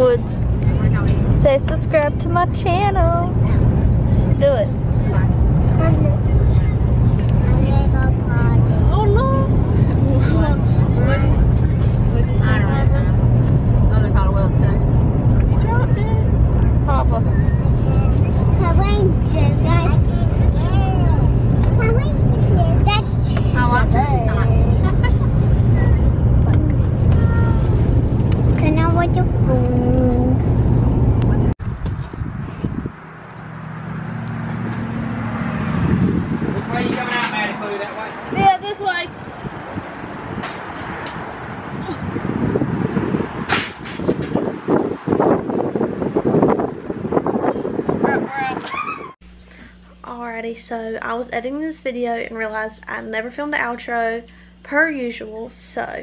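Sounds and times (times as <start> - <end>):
car cabin road rumble: 0.0 - 49.2.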